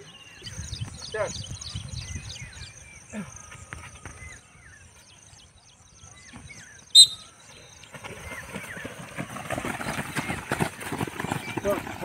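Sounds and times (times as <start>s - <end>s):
small birds chirping: 0.0s - 12.0s
rising bird call: 6.8s - 7.5s.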